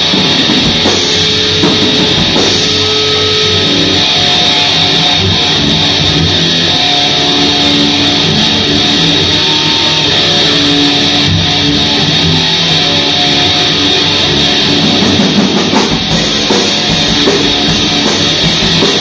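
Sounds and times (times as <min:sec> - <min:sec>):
distorted electric guitar riff: 0:00.0 - 0:19.0.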